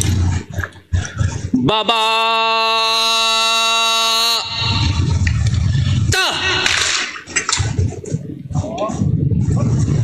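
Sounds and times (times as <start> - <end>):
man calling drill command: 1.7 - 4.6.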